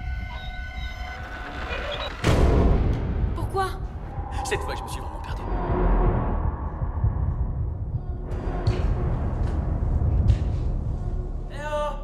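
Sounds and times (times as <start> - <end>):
low rumble: 1.2 - 11.5
rising swell: 3.9 - 8.1.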